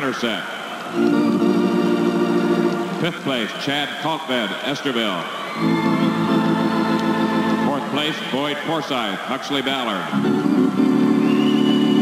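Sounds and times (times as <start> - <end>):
organ low chord: 0.9 - 3.3, 5.6 - 8.0, 10.1 - 12.0.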